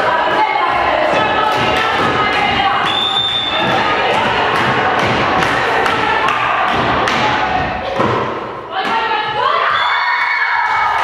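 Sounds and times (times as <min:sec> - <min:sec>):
girls shouting: 0:08.7 - 0:11.0.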